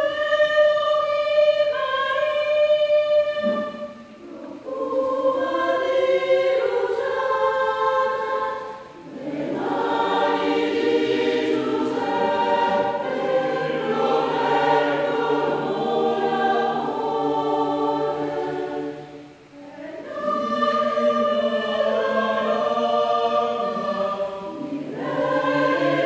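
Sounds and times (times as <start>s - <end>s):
mixed choir singing: 0.0s - 26.0s.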